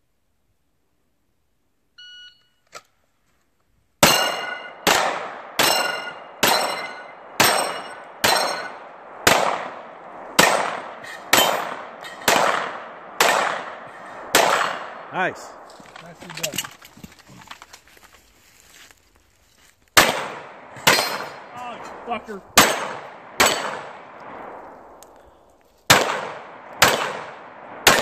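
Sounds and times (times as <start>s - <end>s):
shot timer beep: 2.0s - 2.6s
steel targets ringing: 4.0s - 4.9s, 5.6s - 8.8s, 20.8s - 21.5s
pistol shots: 4.0s - 15.2s, 20.0s - 21.6s, 22.6s - 24.4s, 25.9s - 28.0s.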